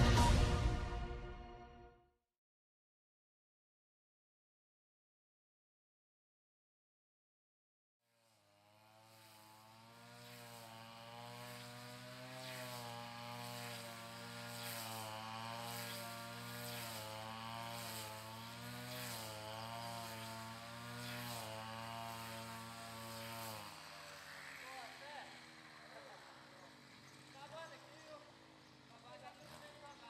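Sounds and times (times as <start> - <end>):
lawn mower engine running: 8.1 - 30.0.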